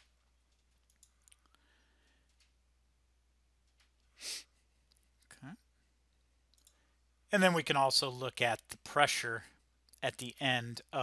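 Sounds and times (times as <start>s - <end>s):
faint computer mouse clicks: 6.5s - 6.8s.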